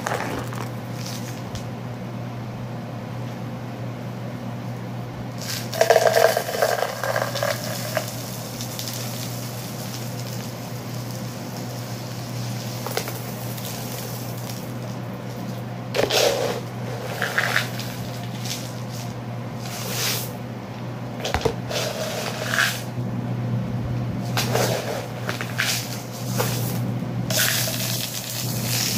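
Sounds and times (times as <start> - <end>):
dry beans and rice pouring: 0.0 - 1.4, 5.4 - 20.4, 21.6 - 22.9, 24.3 - 28.9.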